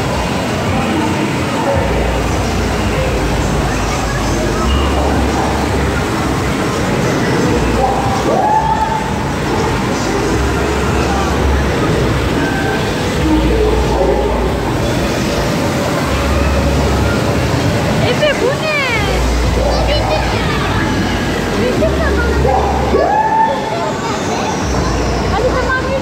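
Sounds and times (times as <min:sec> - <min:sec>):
din of voices: 0:00.0 - 0:26.0
fountain water splashing: 0:00.0 - 0:26.0.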